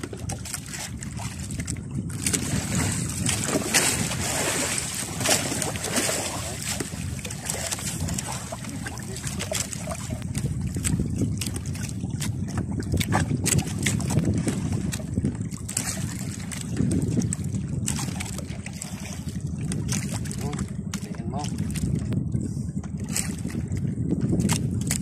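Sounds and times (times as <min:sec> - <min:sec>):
splashing and dripping water: 0:00.0 - 0:22.2
water lapping at canoe: 0:00.0 - 0:25.0
wind on microphone: 0:00.0 - 0:25.0.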